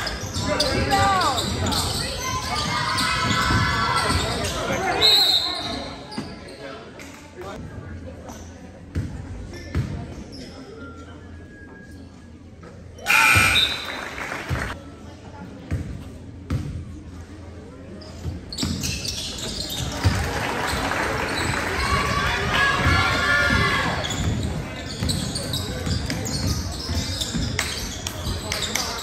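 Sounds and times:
voices echoing in a hall: 0:00.0 - 0:29.0.

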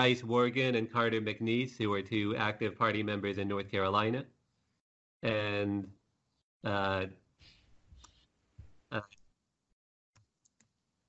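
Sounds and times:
man saying uh: 0:05.2 - 0:05.9, 0:06.6 - 0:07.1.

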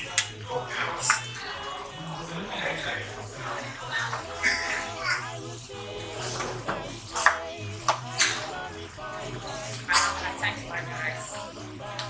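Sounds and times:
music playing: 0:00.0 - 0:12.0.

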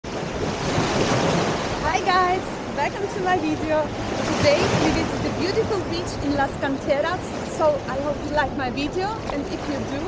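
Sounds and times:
wind blowing across microphone: 0:00.0 - 0:10.0
small waves washing over sand: 0:00.1 - 0:10.0
woman's voice: 0:01.8 - 0:10.0.

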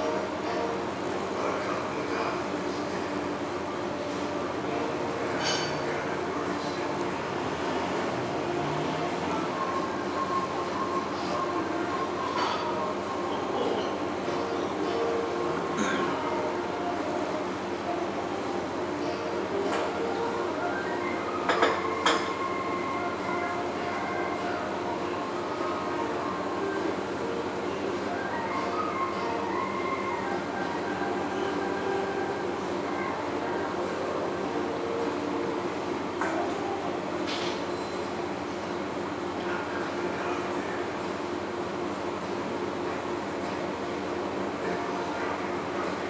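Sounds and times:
excavator engine and hydraulics humming: 0:00.0 - 0:46.0.

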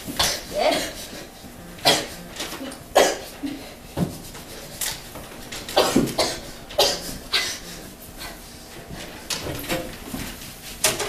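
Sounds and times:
person coughing: 0:00.2 - 0:01.1, 0:01.8 - 0:03.8, 0:05.8 - 0:07.9.

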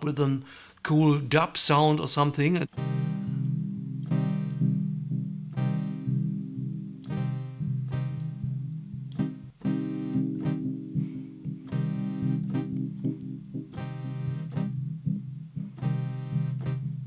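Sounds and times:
steady low synth tone: 0:02.7 - 0:17.0
synthesizer short pitched notes: 0:02.7 - 0:17.0.

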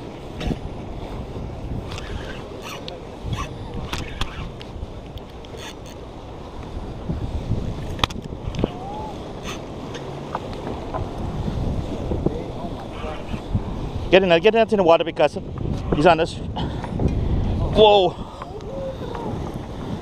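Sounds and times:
wind buffeting microphone: 0:00.0 - 0:20.0
fishing reel clicks and knocks: 0:01.9 - 0:06.0.

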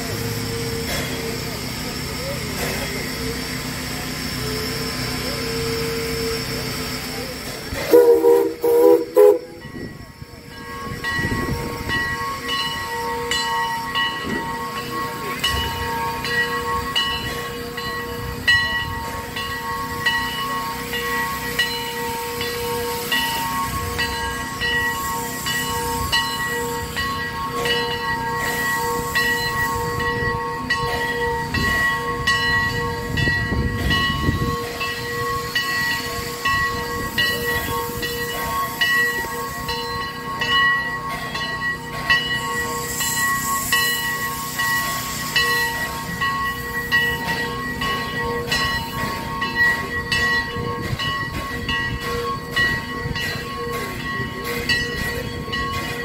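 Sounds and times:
steam locomotive hissing: 0:00.0 - 0:56.0.

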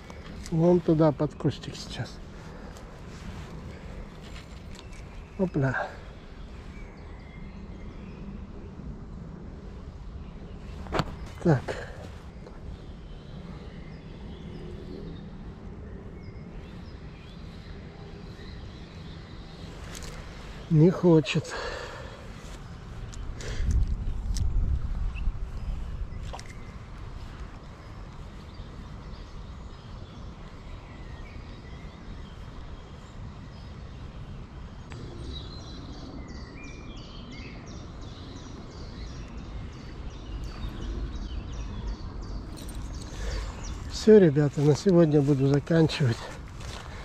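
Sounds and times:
faint birdsong: 0:00.0 - 0:47.0
wind rumble on microphone: 0:22.3 - 0:44.0.

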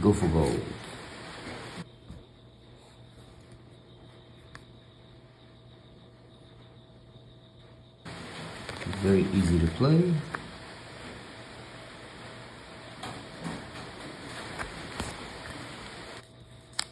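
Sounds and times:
faint steady hum and hiss: 0:00.0 - 0:16.9.

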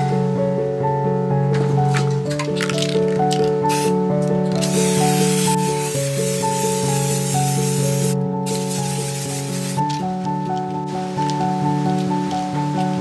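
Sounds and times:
background music: 0:00.0 - 0:13.0
spray paint can hissing: 0:03.6 - 0:10.0.

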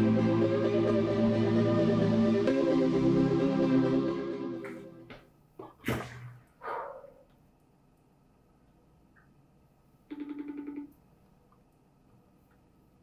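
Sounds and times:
music: 0:00.0 - 0:05.1.

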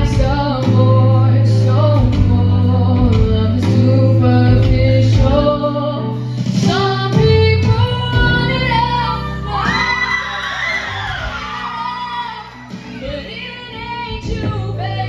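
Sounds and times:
amplified backing track: 0:00.0 - 0:15.0
girl singing into microphone: 0:00.0 - 0:15.0.

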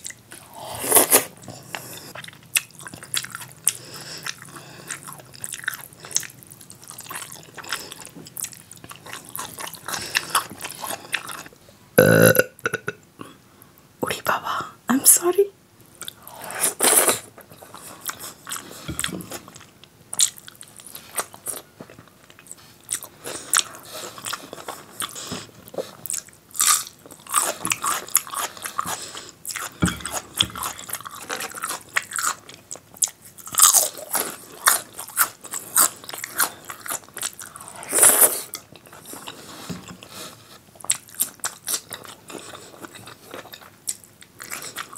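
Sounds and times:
wet chewing and lip smacking: 0:17.6 - 0:37.6.

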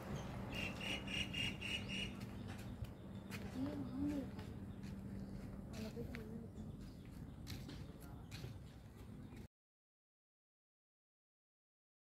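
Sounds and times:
guineafowl calling harsh notes: 0:00.4 - 0:02.3.

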